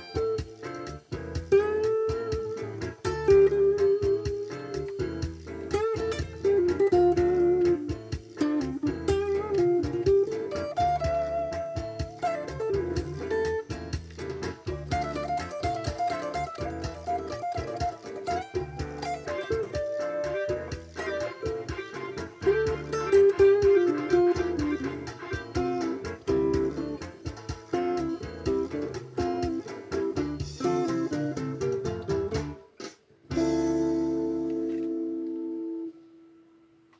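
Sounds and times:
electric guitar lead melody: 0.0 - 32.7, 33.3 - 36.4.

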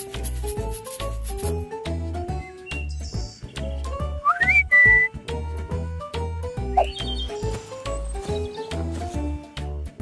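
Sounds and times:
gentle children's music: 0.0 - 10.0.

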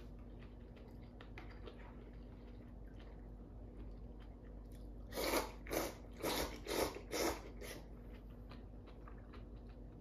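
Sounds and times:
noodle slurps: 5.0 - 7.9.

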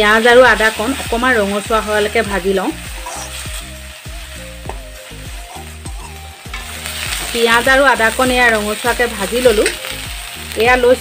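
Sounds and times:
background music with singing: 0.0 - 11.0
food sizzling in hot oil: 0.0 - 11.0
spatula scraping metal pan: 2.8 - 3.7.

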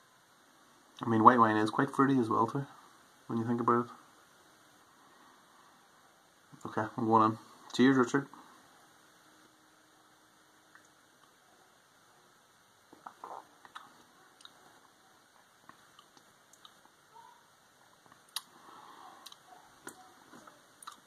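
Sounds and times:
lip and tongue smacks: 12.9 - 14.6, 18.1 - 18.5.

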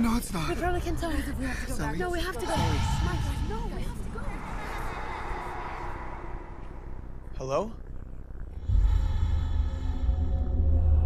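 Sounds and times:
low rumbling ambience: 0.0 - 11.0.

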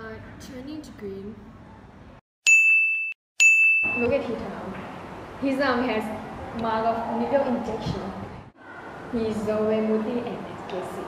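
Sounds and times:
electronic ding tones: 2.5 - 4.1.

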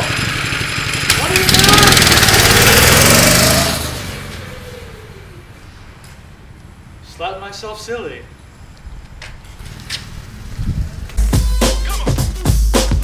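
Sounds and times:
go-kart engine revving: 0.0 - 5.5, 9.5 - 11.5.

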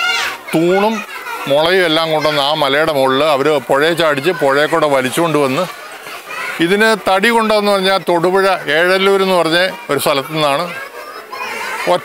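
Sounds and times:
man speaking: 0.6 - 5.8, 6.6 - 10.8.

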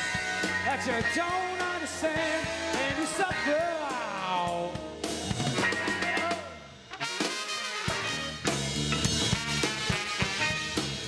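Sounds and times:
ska band with horns: 0.0 - 11.0
drum kit hits: 7.0 - 11.0.

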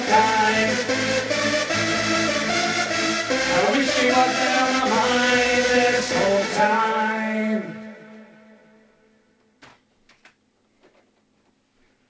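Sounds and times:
sustained synth chords: 0.0 - 9.2
man singing a held note: 3.5 - 9.1.

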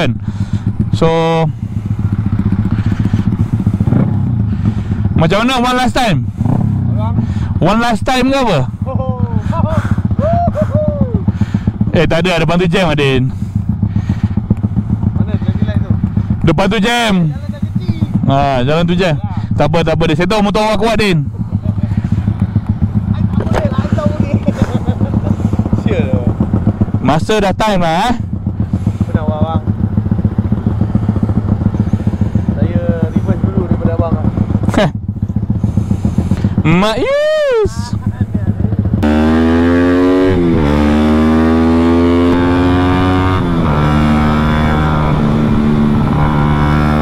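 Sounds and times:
small motorcycle engine idling: 0.1 - 47.0.

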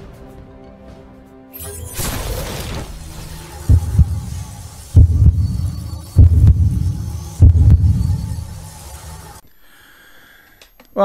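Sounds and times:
deep double bass thumps: 3.7 - 4.4, 5.0 - 8.2.

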